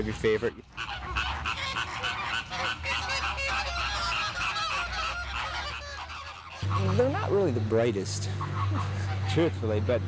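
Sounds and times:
flamingos honking: 0.0s - 10.0s.

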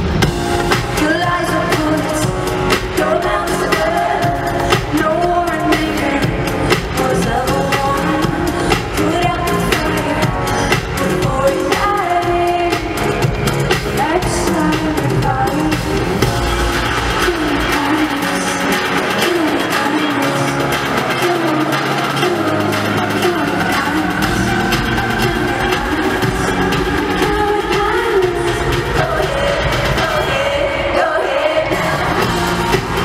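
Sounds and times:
live pop band playing: 0.0s - 33.0s
woman singing lead vocal: 0.2s - 33.0s.

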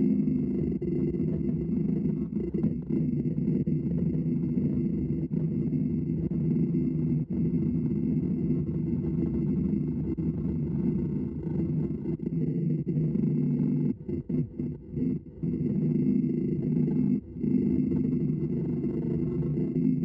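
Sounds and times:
faint high whine: 0.0s - 20.0s.

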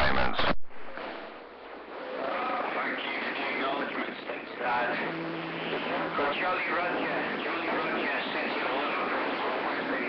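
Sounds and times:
radio static hiss: 0.0s - 10.0s
low steady hum: 5.0s - 8.0s.

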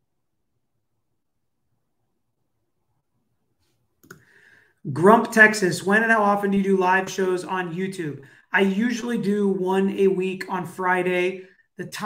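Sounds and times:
man speaking: 4.8s - 12.0s.

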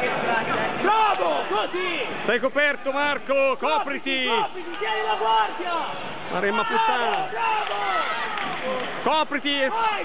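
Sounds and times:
men shouting encouragement: 3.7s - 8.4s, 9.1s - 10.0s.

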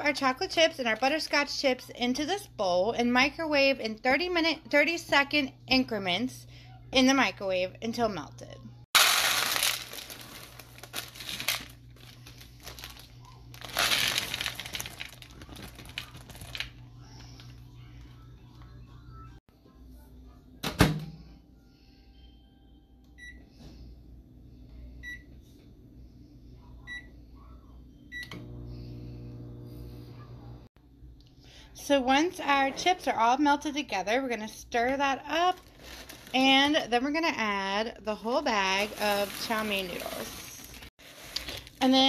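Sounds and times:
microwave humming: 7.0s - 19.4s, 26.7s - 30.7s
chips rattling into plastic bowl: 9.0s - 16.7s, 38.8s - 42.0s
microwave keypad beeps: 23.2s - 23.4s.

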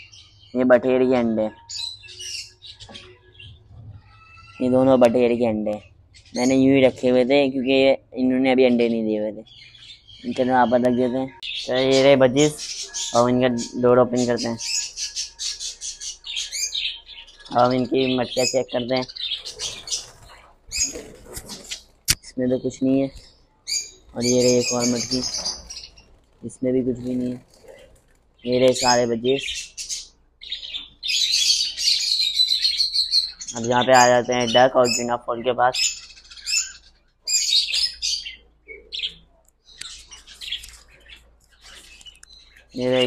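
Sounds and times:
budgerigars chirping: 0.0s - 8.0s, 8.8s - 43.0s.

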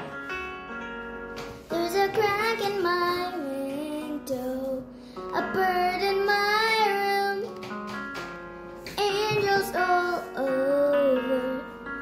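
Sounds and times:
girl singing: 1.5s - 7.8s, 8.8s - 12.0s.

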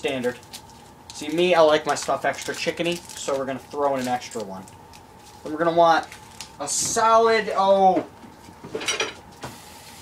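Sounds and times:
kitchen items clattering on countertop: 8.6s - 9.2s.

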